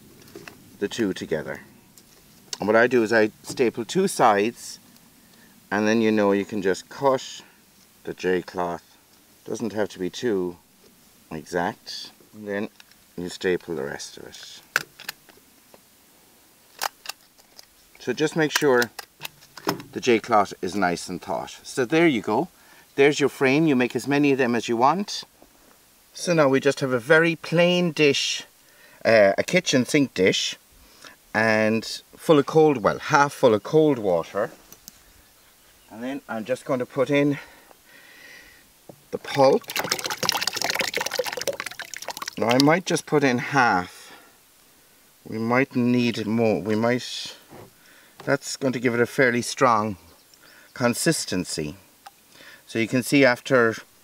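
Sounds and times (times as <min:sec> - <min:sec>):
paper pulp splashing into water: 0:39.2 - 0:42.7.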